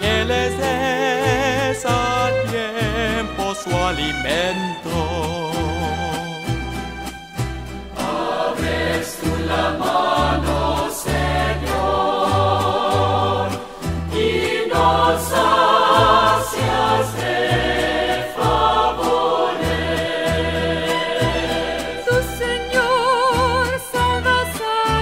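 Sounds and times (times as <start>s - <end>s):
choir singing: 7.8s - 23.6s.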